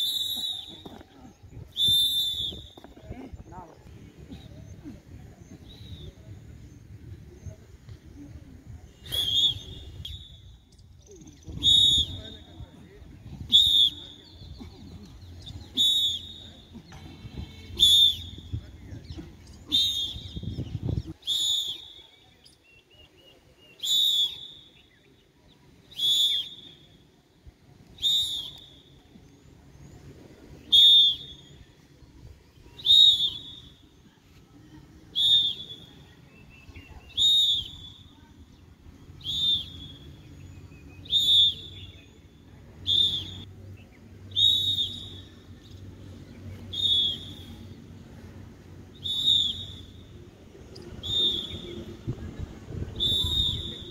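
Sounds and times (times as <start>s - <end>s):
short loud whistle blasts: 1.7s - 2.8s, 9.0s - 10.6s, 11.6s - 12.6s, 17.5s - 18.6s, 21.2s - 22.2s, 30.6s - 31.6s, 37.1s - 38.2s, 39.2s - 40.2s, 42.8s - 43.4s, 44.3s - 45.4s, 46.7s - 47.7s, 49.0s - 50.2s, 51.0s - 52.0s, 52.9s - 53.9s.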